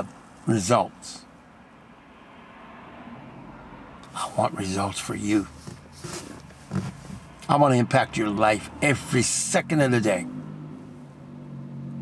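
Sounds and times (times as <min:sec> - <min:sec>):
car driving past: 0:01.9 - 0:04.4, 0:05.4 - 0:12.0.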